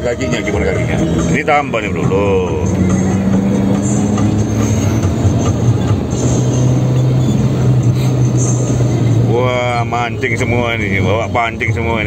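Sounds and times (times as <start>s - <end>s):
car engine running: 0.0s - 12.0s
road noise: 0.0s - 12.0s.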